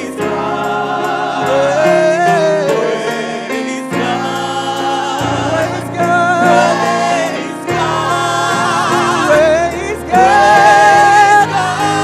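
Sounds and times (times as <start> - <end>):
vocal group singing in harmony: 0.0 - 12.0.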